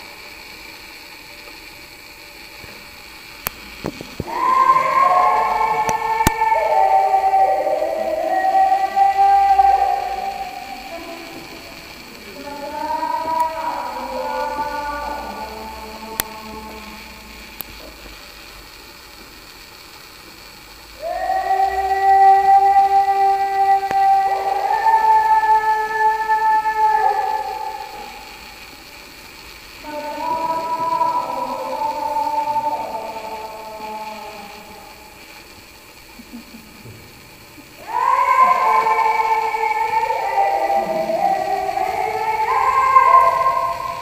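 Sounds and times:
slow music of long held chords: 0.0 - 19.2, 20.9 - 44.0.

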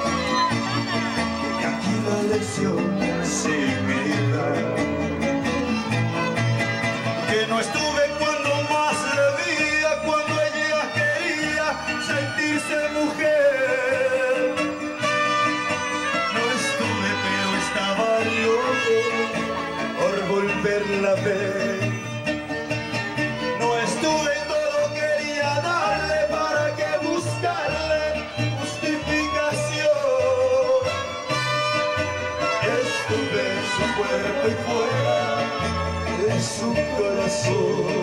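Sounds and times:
person singing: 0.0 - 6.4, 7.1 - 22.2, 23.4 - 31.5, 32.4 - 38.0
bass line: 0.0 - 38.0
live latin band music: 0.0 - 38.0.

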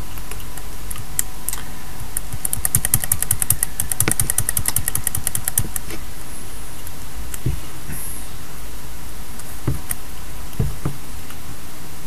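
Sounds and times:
keyboard typing: 0.0 - 5.9.

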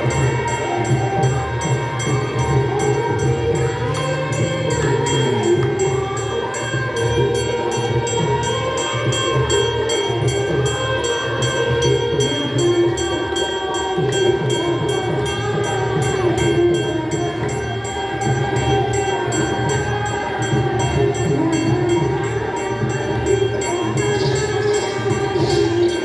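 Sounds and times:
bells and cymbals beating: 0.0 - 26.0
devotional chorus singing: 0.0 - 26.0.

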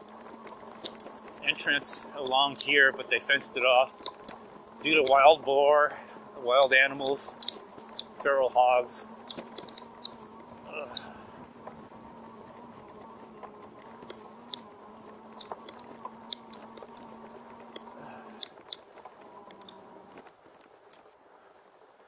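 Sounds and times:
sharp clicks and rattles: 0.0 - 5.6, 6.6 - 12.2, 15.3 - 21.1
electric bike motor whining: 0.0 - 22.0
tyres rolling over grass: 0.0 - 22.0.

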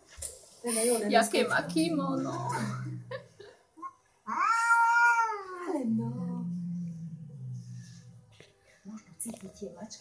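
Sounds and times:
cat meowing: 4.2 - 5.9.

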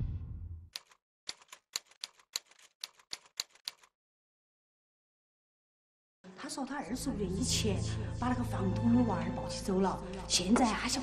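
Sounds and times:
typewriter key clacks: 0.8 - 3.9.

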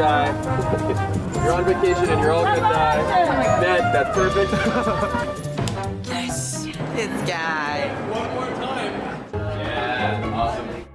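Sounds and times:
background music: 0.0 - 10.9
people laughing: 0.2 - 1.4, 4.3 - 5.5
people talking: 6.1 - 9.0.

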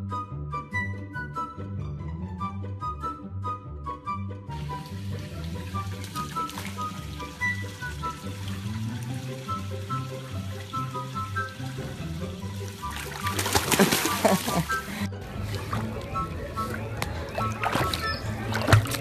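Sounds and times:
background music: 0.0 - 19.0
running water hiss: 4.6 - 14.9
dog splashing into pool: 4.6 - 19.0.

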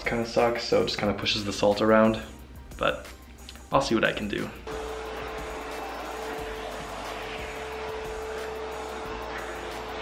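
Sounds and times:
vacuum cleaner whining: 4.7 - 10.0.

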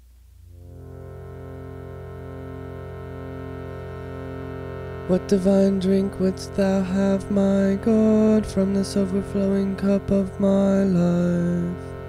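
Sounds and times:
harmonium drone: 0.4 - 12.0.

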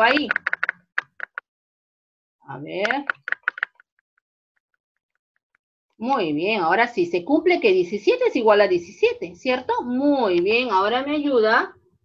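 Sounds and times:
computer mouse clicking: 0.0 - 1.4, 2.8 - 3.8.

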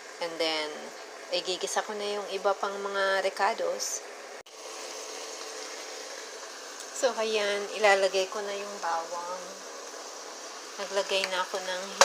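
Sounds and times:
chicken sizzling in hot oil: 0.0 - 12.0.

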